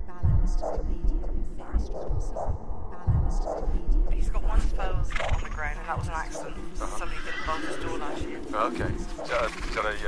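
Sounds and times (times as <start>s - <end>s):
horse whinnying: 6.8s - 8.2s.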